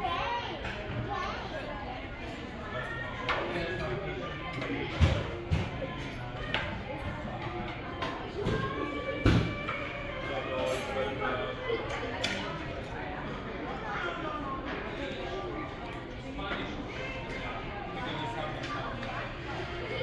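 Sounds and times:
many diners talking: 0.0 - 20.0
dishes and utensils clinking: 9.5 - 12.6.

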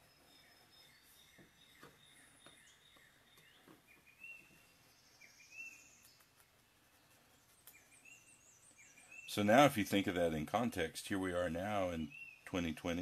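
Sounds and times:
faint birds chirping: 0.0 - 13.0.

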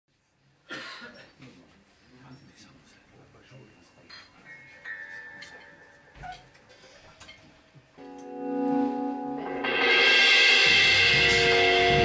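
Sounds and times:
person coughing: 0.7 - 1.4.

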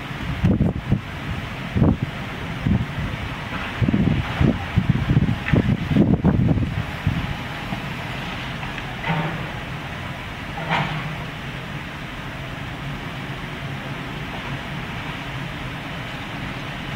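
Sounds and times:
excavator diesel engine running: 0.0 - 16.9.

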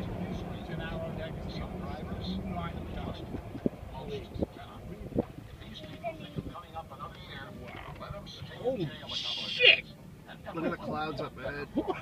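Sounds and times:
car engine hum: 0.0 - 12.0
road rumble: 0.0 - 12.0.

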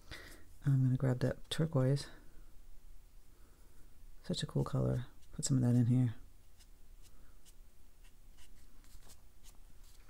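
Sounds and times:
paintbrush tapping and scratching paper: 4.5 - 10.0.

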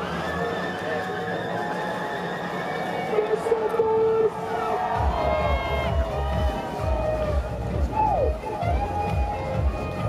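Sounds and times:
background music with wavering melody: 0.0 - 3.6.

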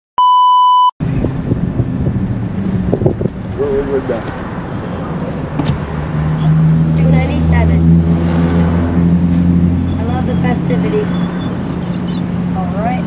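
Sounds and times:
car engine idling hum: 1.0 - 13.0.

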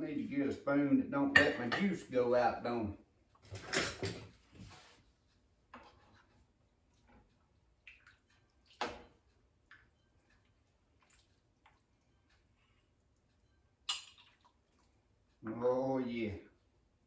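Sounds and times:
kitchen utensils rattling: 3.5 - 4.3
liquid dripping: 7.7 - 15.1.

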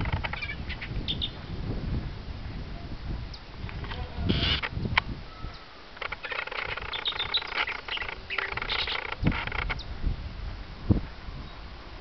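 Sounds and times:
bird singing varied notes: 0.0 - 1.4, 5.3 - 9.9.

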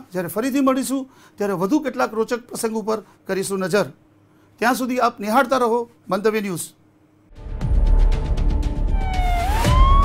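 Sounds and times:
bass-heavy music with fast beat: 7.4 - 10.0
siren sound effect wailing: 8.9 - 10.0.

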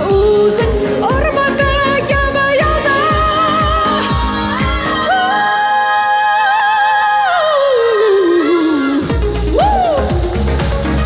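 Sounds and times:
woman singing pop song: 0.0 - 10.6.

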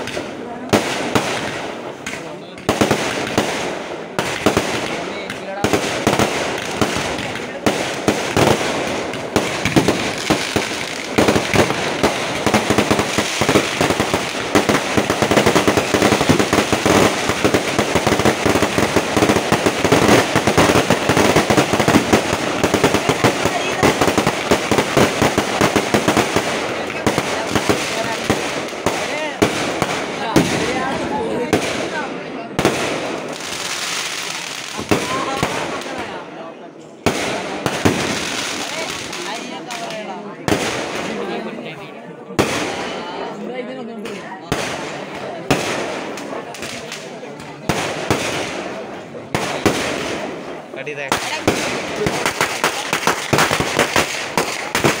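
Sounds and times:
fireworks bangs and crackles: 0.0 - 55.0.

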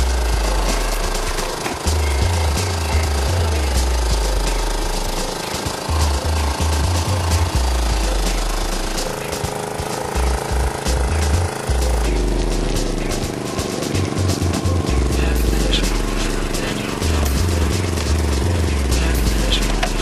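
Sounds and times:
music with heavy bass: 0.0 - 20.0
small engine clattering: 0.0 - 20.0.

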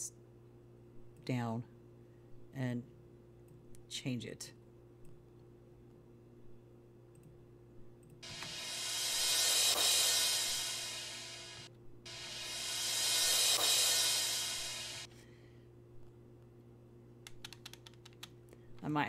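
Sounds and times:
hissing cymbal wash: 8.2 - 15.1
sharp clicks: 17.2 - 18.4.

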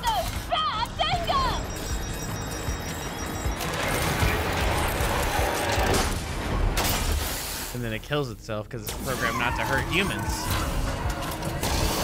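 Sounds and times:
soundtrack music: 0.0 - 7.3.

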